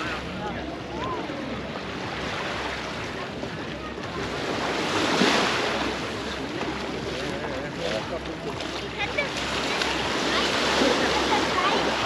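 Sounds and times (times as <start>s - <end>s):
people talking: 0.0s - 12.0s
small waves on sandy beach: 0.0s - 12.0s.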